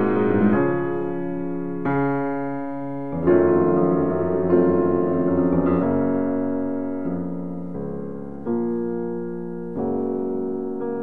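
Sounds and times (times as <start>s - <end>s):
slow piano music: 0.0s - 11.0s.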